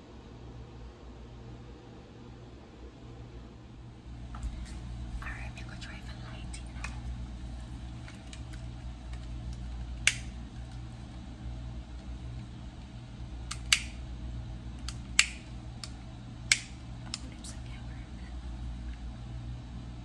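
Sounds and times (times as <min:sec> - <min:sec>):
low steady hum: 0:00.0 - 0:20.0
lighter clicking: 0:10.0 - 0:10.4, 0:13.4 - 0:14.0, 0:14.8 - 0:17.2.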